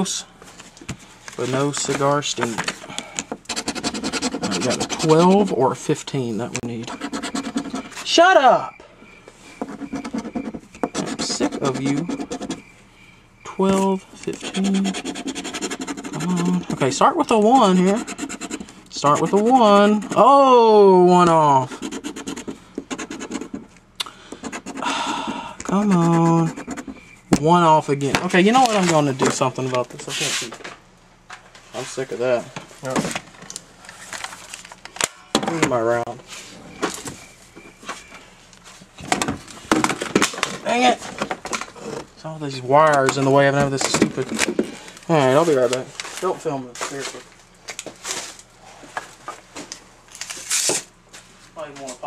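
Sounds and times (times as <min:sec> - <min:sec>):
coin scratching lottery ticket: 0:03.4 - 0:05.7, 0:06.8 - 0:08.2, 0:09.6 - 0:12.6, 0:14.2 - 0:20.4, 0:21.6 - 0:23.7, 0:24.4 - 0:24.9, 0:25.6 - 0:27.0.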